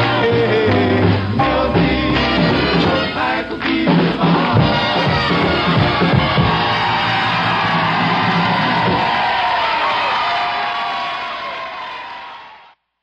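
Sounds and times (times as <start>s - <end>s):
high wavering voices singing: 0.0s - 8.8s
rock and roll band playing: 0.0s - 10.4s
crowd cheering: 3.9s - 12.8s.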